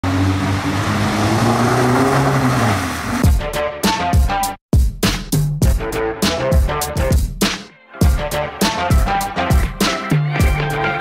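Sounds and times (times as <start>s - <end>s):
car engine running: 0.0s - 3.3s
rushing noise: 0.0s - 3.3s
electronic music beat: 3.2s - 11.0s.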